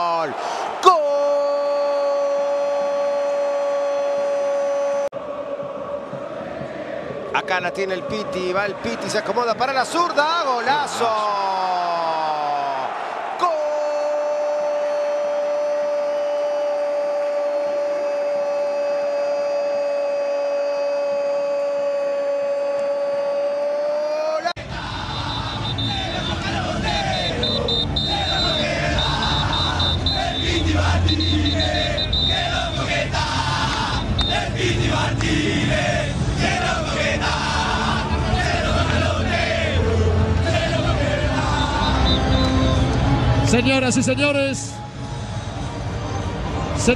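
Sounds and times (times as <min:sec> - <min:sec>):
stadium crowd chanting and singing: 0:00.0 - 0:43.9
music: 0:05.2 - 0:08.6, 0:24.6 - 0:46.9.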